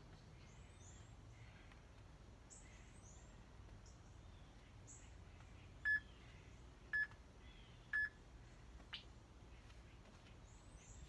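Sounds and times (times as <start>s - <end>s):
faint bird chirps: 0.0s - 11.0s.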